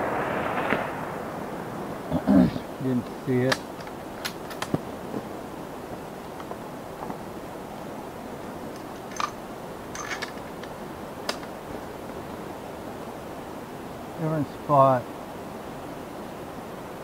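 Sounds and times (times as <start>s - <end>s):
low outdoor hiss: 0.0s - 17.0s.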